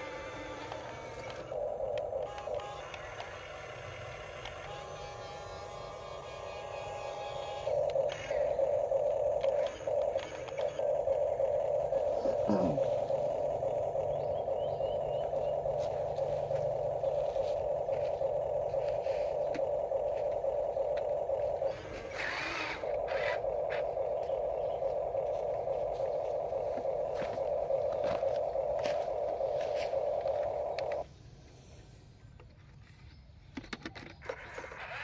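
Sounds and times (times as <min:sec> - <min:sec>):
electric motors whining: 0:00.0 - 0:32.1, 0:34.2 - 0:35.0.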